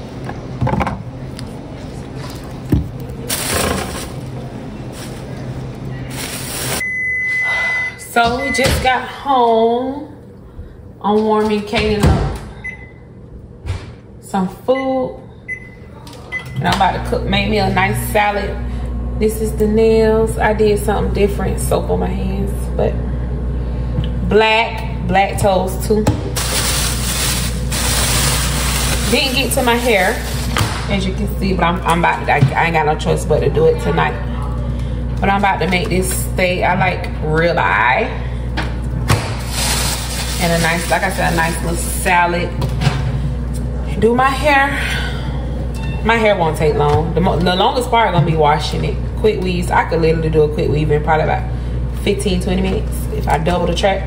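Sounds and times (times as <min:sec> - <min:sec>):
store background hum: 0:00.0 - 0:54.0
items rustling: 0:02.0 - 0:06.8, 0:26.4 - 0:30.6.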